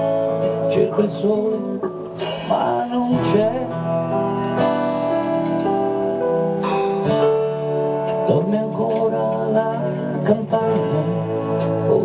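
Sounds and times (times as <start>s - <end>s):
acoustic guitar strumming: 0.0s - 12.0s
sustained keyboard chords: 0.0s - 12.0s.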